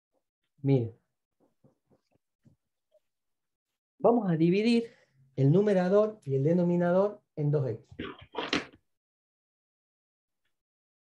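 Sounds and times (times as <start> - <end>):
marker squeaking on whiteboard: 8.0 - 8.8.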